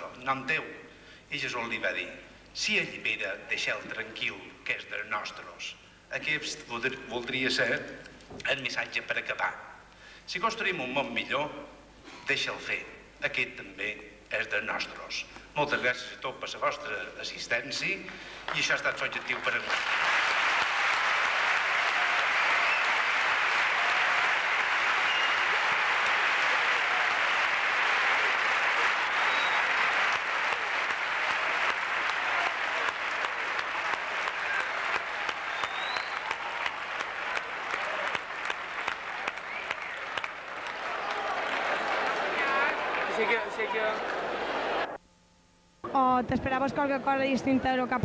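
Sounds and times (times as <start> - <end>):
audience applauding: 18.3 - 45.0
crowd voices: 39.1 - 45.0.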